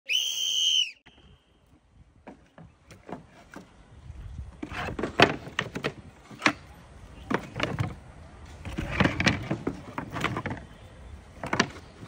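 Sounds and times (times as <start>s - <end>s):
shrill whistle blast: 0.0s - 1.6s.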